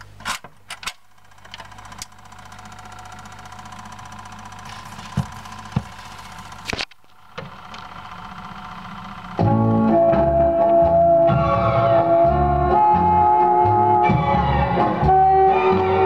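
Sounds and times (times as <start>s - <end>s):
record player motor hum: 0.0s - 11.0s.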